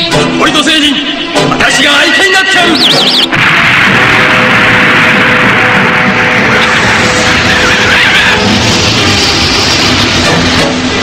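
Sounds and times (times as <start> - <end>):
film soundtrack music: 0.0 - 11.0
loud rushing hissing effect: 2.6 - 11.0.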